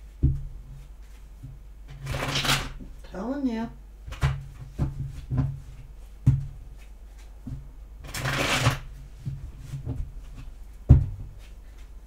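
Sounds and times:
cards being shuffled: 2.0s - 2.8s, 8.0s - 8.8s.

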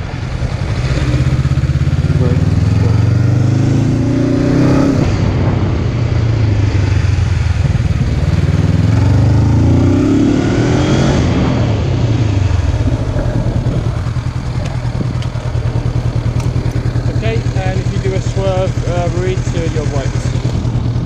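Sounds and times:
motorcycle engine running: 0.0s - 21.0s.

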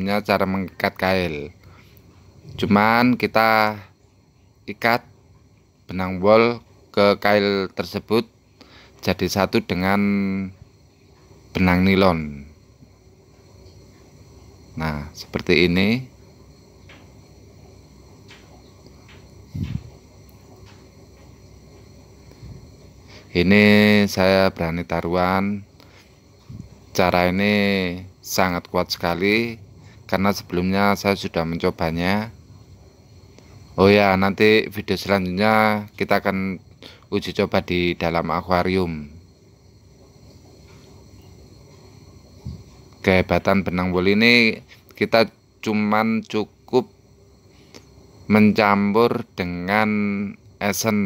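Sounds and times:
faint steady high tones: 0.0s - 51.0s
low background noise: 0.0s - 51.0s.

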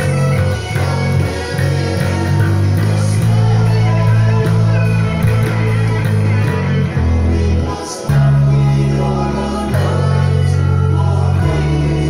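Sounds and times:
electric bass low notes: 0.0s - 12.0s
sung vocals: 0.0s - 12.0s.

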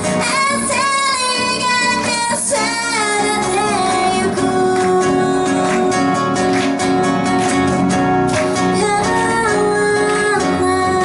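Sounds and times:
woman singing into microphone: 0.0s - 7.3s, 8.7s - 11.0s
acoustic guitar: 0.0s - 11.0s
bass guitar: 0.0s - 11.0s.

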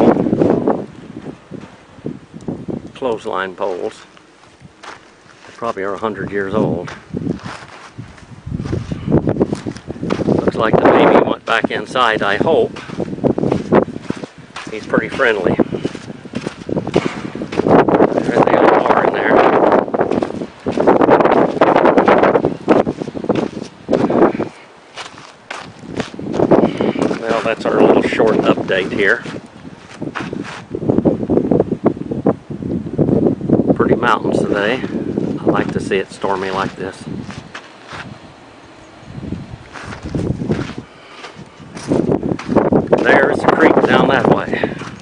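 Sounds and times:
wind buffeting microphone: 0.0s - 45.0s
steps or clicks: 12.7s - 18.6s.

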